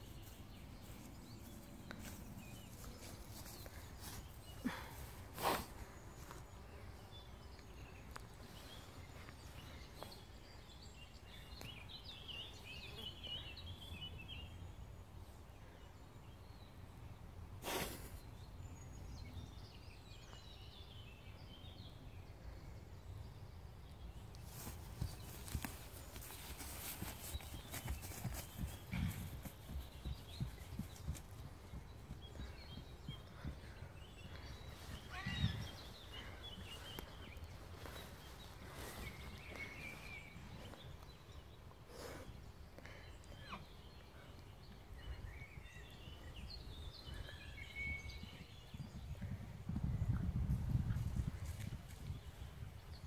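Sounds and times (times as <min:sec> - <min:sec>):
hooves thudding on grass: 0:00.0 - 0:06.5, 0:24.4 - 0:41.1, 0:47.0 - 0:53.0
birds chirping: 0:00.0 - 0:53.0
wind rumble on microphone: 0:28.2 - 0:40.9, 0:45.0 - 0:53.0.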